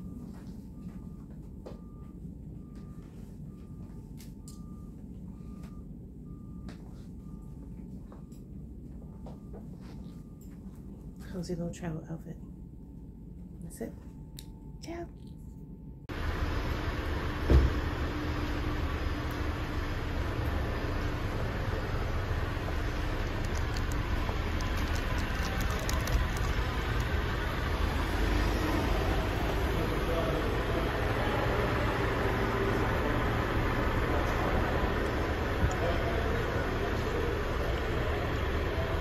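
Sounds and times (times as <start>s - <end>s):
reversing alarm beeping: 0.0s - 11.3s
faint steady hum: 0.0s - 39.0s
low engine rumble: 15.3s - 39.0s
loud thump: 17.5s - 17.8s.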